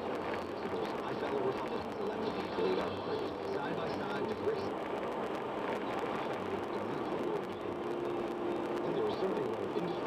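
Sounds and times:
car road and tyre noise: 0.0s - 10.0s
faint indistinct voices: 0.4s - 4.9s.

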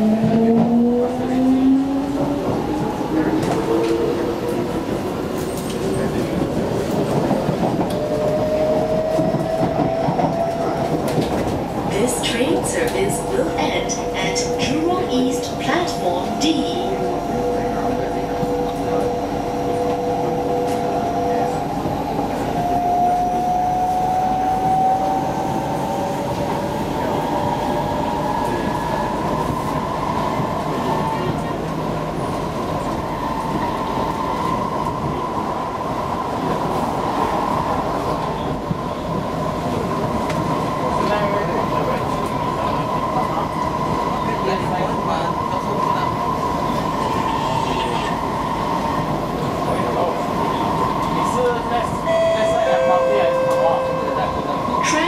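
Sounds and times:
train wheels rumbling on rails: 0.0s - 52.5s
train passing on next track: 0.0s - 55.0s.

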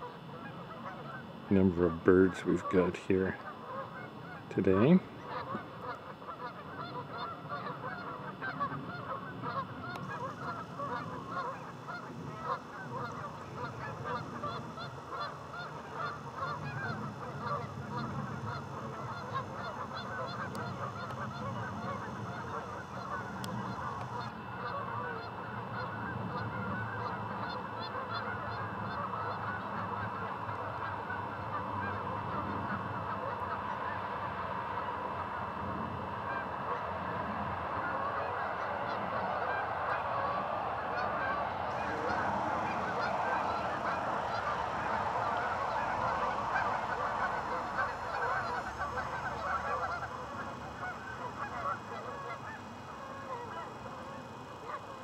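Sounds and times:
flock of geese honking: 0.0s - 55.0s.

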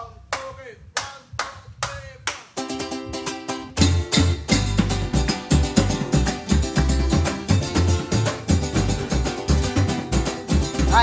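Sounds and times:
sharp handclaps: 0.3s - 2.6s, 5.3s - 10.9s.

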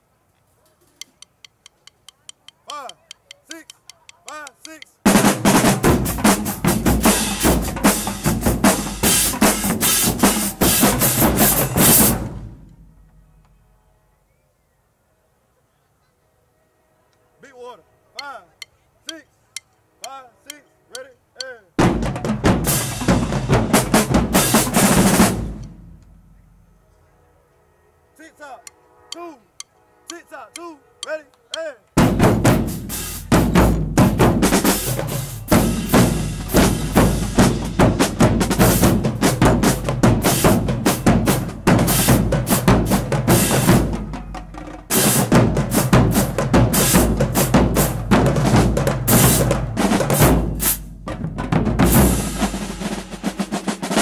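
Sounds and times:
marching drumline playing: 4.3s - 12.7s, 21.8s - 26.0s, 32.0s - 54.0s.

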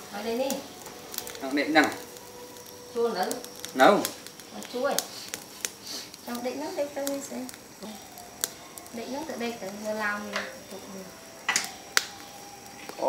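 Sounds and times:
crackles and pops of grilling: 0.0s - 13.0s
people talking: 0.1s - 0.6s, 2.9s - 5.1s, 6.3s - 8.0s, 8.9s - 11.1s.

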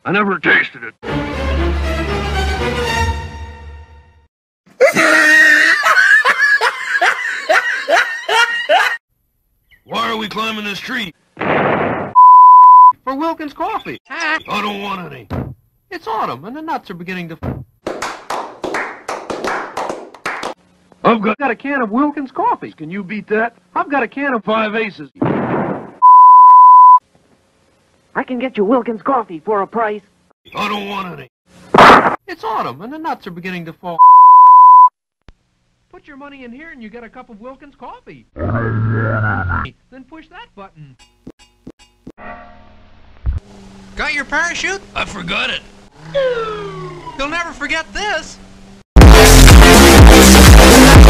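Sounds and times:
shrill cackling laugh: 4.8s - 9.0s
high-pitched test-tone beep: 12.2s - 12.9s, 26.0s - 27.0s, 34.0s - 34.9s.

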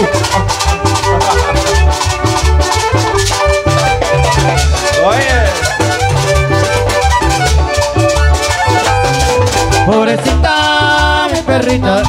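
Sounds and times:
bass and drum beat: 0.0s - 12.0s
violins playing melody: 0.0s - 12.0s.

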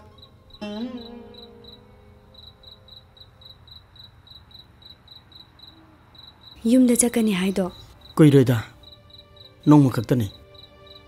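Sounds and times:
plucked string note: 0.0s - 2.0s
crickets chirping: 0.0s - 11.0s.

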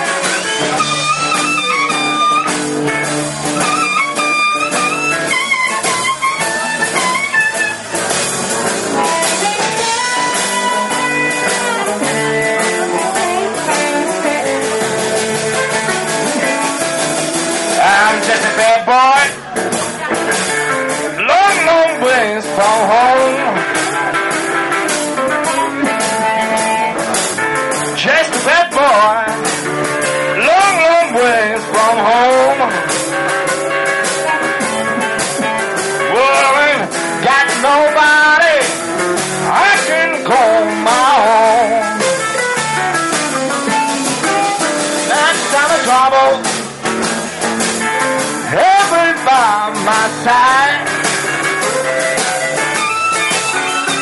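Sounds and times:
bass and drums: 0.0s - 54.0s
electric guitar: 0.0s - 54.0s
live blues band playing: 0.0s - 54.0s
person singing: 8.9s - 46.7s, 47.9s - 52.4s.

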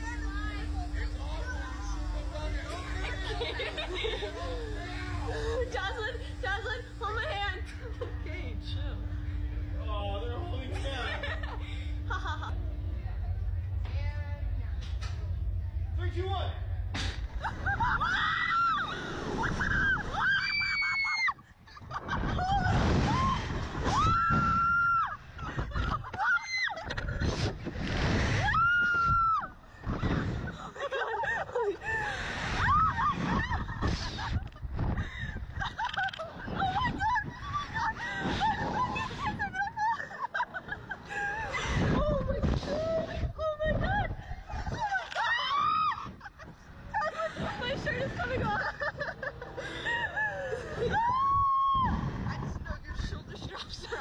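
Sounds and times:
wind rushing past microphone: 12.5s - 54.0s.

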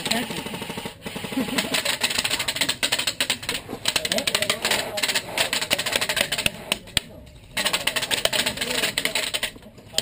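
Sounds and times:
rapid airsoft gun fire: 0.0s - 6.8s.

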